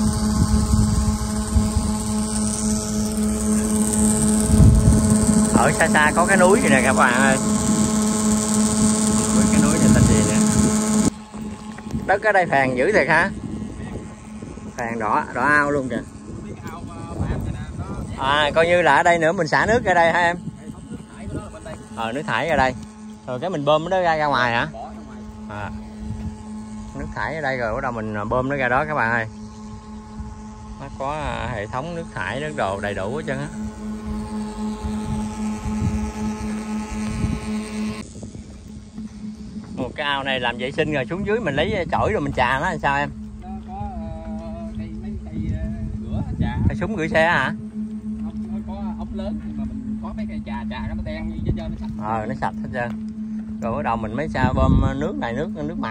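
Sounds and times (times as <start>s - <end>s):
aerator motor hum: 0.0s - 55.9s
wind on microphone: 0.0s - 55.9s.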